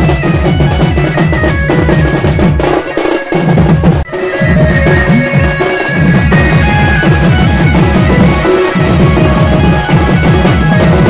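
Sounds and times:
barrel drums playing fast beat: 0.0s - 11.0s
high held notes: 0.0s - 11.0s.

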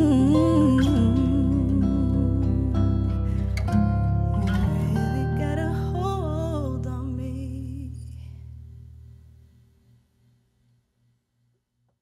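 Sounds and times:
woman singing with vibrato: 0.0s - 3.5s, 4.2s - 8.2s
low accompaniment: 0.0s - 7.5s
acoustic guitar: 0.0s - 10.4s.

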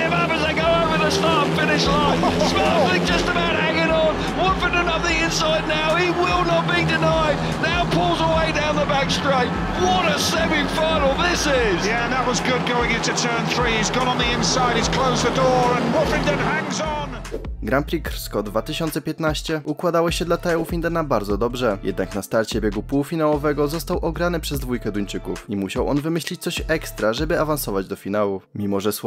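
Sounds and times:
crowd noise: 0.0s - 17.0s
motorcycle engines racing: 0.0s - 17.2s
broadcast commentary: 0.0s - 29.0s.

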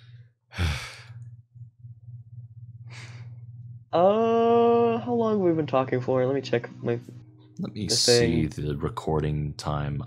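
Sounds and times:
low steady hum: 0.0s - 10.0s
person sighing: 0.5s - 1.1s.

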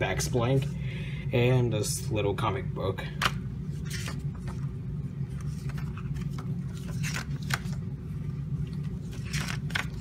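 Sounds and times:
low background hum: 0.0s - 10.0s
paper rustling and clicking: 5.3s - 7.9s, 8.7s - 10.0s.

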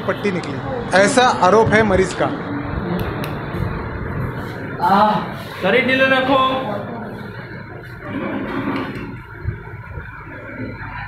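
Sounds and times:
muffled room background noise: 0.0s - 11.0s.

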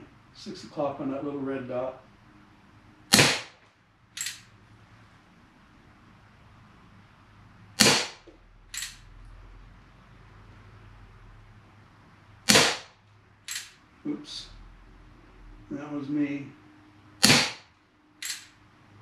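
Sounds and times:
air pistol shot cracking: 3.1s - 3.6s, 7.8s - 8.3s, 12.4s - 13.7s, 17.2s - 17.7s.

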